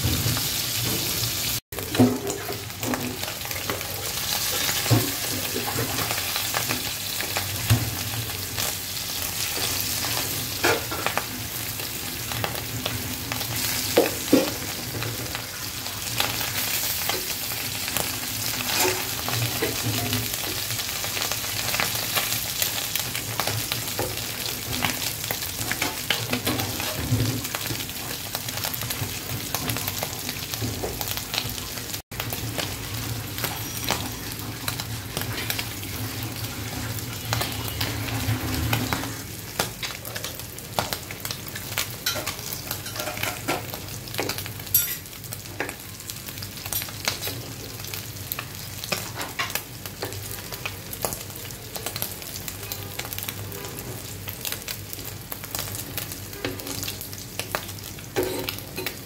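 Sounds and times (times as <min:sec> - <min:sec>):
fish sizzling in hot oil: 0:00.0 - 0:59.0.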